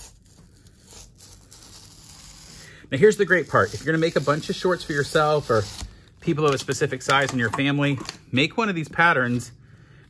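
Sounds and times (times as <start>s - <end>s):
man speaking: 2.9s - 9.6s.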